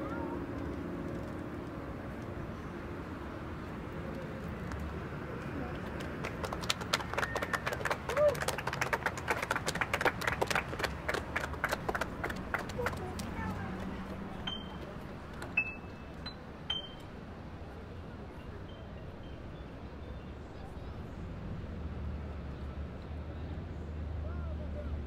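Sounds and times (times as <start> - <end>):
faint voices: 11.0 - 25.0.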